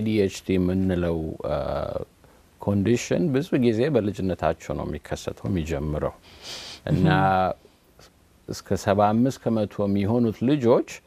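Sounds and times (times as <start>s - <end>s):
man speaking: 0.0s - 6.2s, 6.9s - 7.6s, 8.5s - 11.0s.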